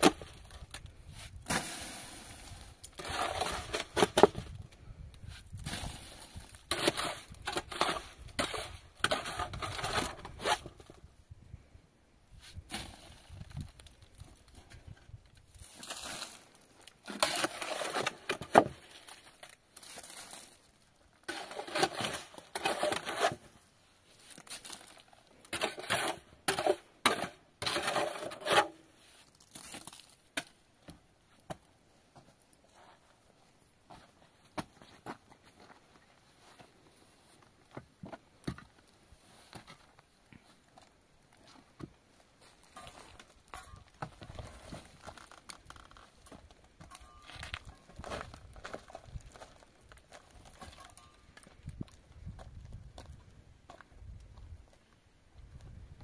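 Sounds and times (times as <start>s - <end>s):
shovel scraping mortar in metal basin: 1.2s - 4.4s, 5.6s - 10.8s, 17.1s - 18.8s, 21.2s - 23.5s, 25.5s - 28.8s.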